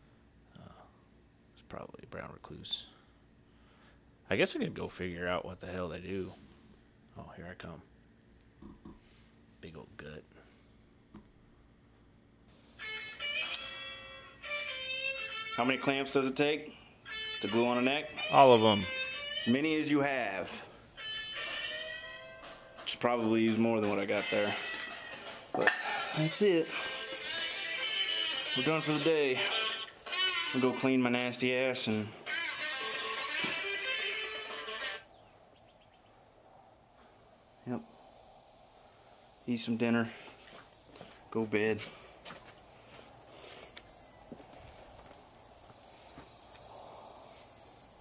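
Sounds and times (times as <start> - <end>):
guitar ringing notes: 12.8 - 35.0
sharp click: 13.4 - 13.7.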